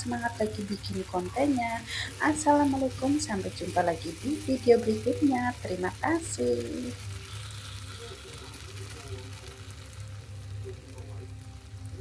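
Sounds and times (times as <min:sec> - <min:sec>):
food sizzling in wok: 0:00.0 - 0:12.0
steady low hum: 0:00.0 - 0:12.0.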